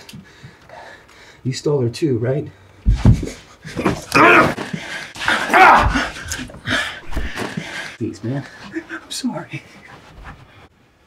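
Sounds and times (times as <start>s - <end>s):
man yelling: 4.1s - 4.6s, 5.3s - 6.1s.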